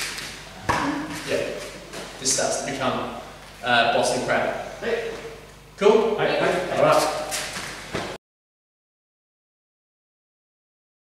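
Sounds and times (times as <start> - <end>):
man speaking: 1.2 - 7.3.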